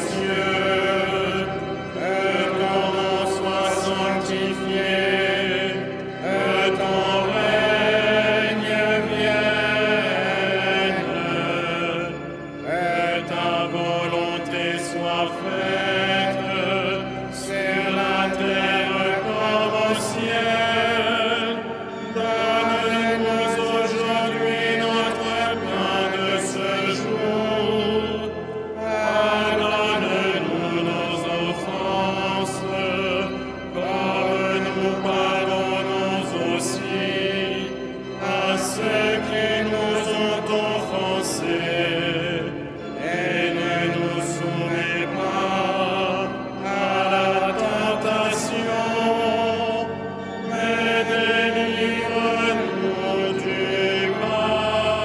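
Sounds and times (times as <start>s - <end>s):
choir singing a slow chant: 0.0s - 55.0s.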